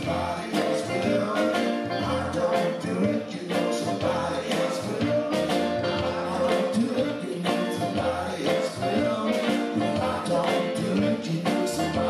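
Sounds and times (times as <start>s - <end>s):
live band music: 0.0s - 12.0s
man singing: 0.0s - 12.0s
stage piano: 0.0s - 12.0s.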